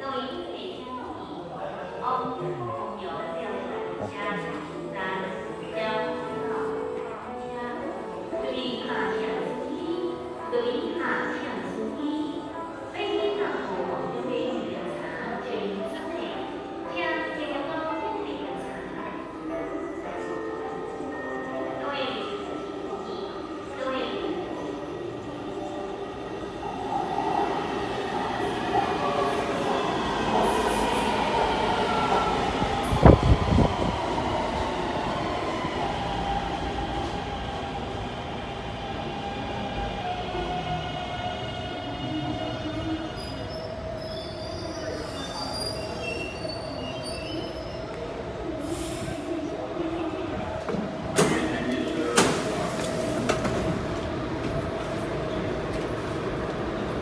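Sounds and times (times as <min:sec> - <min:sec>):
train doors opening clunk: 0:50.6 - 0:54.7.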